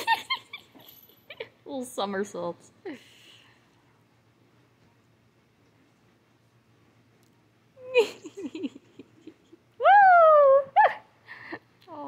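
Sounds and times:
person laughing: 7.8s - 9.6s.

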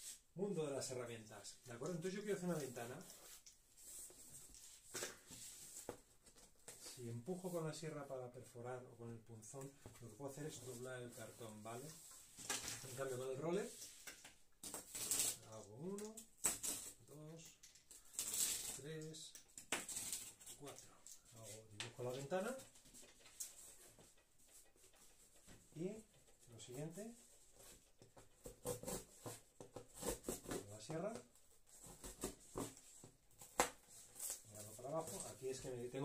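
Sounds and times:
man talking: 0.4s - 3.1s, 7.0s - 12.0s, 20.6s - 22.7s, 30.6s - 31.3s, 34.5s - 36.0s.

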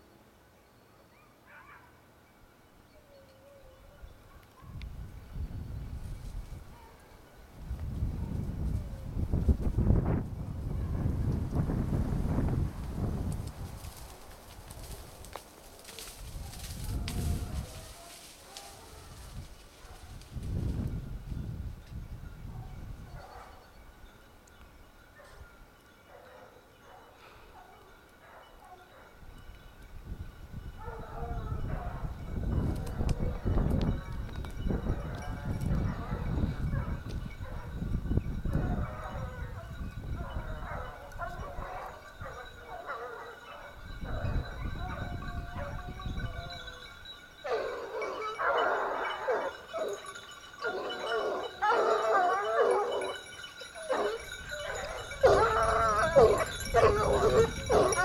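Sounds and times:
hounds baying: 15.8s - 20.2s, 23.1s - 23.7s, 26.0s - 29.2s, 30.8s - 37.8s, 38.5s - 58.0s.

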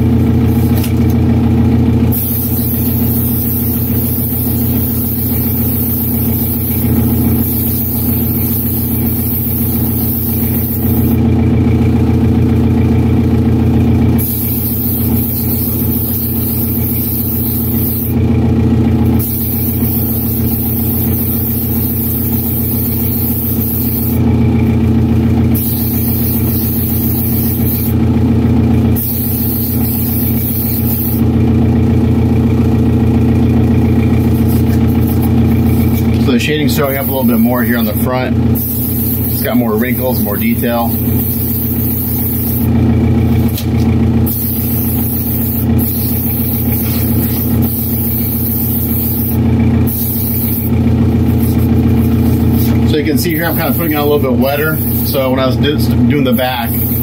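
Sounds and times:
steady motor hum: 0.0s - 57.0s
airbrush spraying hiss: 2.1s - 11.2s, 14.2s - 18.2s, 19.2s - 24.2s, 25.6s - 28.0s, 29.0s - 31.2s, 34.2s - 36.0s, 38.6s - 39.5s, 40.7s - 42.7s, 44.3s - 54.1s, 54.8s - 55.2s, 56.7s - 57.0s.

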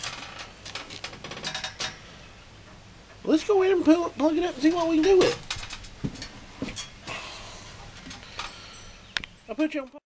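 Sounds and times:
steady background hiss: 0.0s - 10.0s
handling knocks and rustles: 4.3s - 7.0s.

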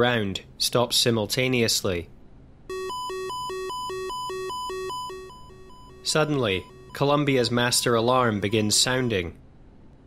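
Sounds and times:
alarm alternating tone: 2.7s - 9.2s.

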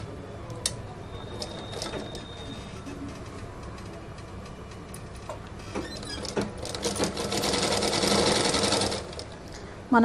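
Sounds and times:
sewing machine running: 6.2s - 9.3s.

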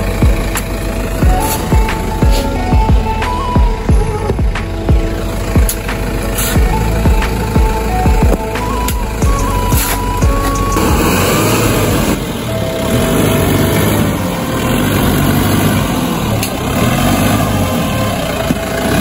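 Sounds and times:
car engine running under load: 0.0s - 19.0s.

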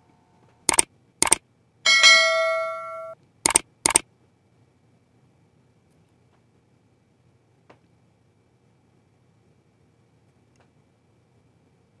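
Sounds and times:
sharp clicks: 0.7s - 1.4s, 3.4s - 4.0s
bell ding: 1.9s - 3.2s.

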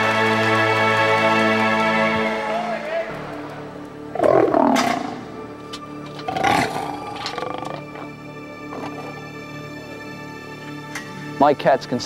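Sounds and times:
background music: 0.0s - 12.0s
lion growling: 4.1s - 5.3s, 6.0s - 9.5s.

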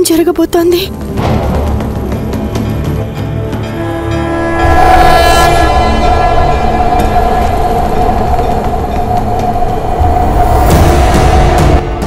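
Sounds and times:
low rumble: 0.6s - 12.0s
loud horn-like tone: 3.7s - 11.8s.

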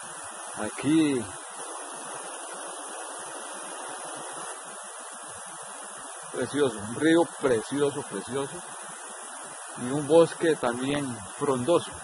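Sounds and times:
river rushing over stones: 0.0s - 12.0s.

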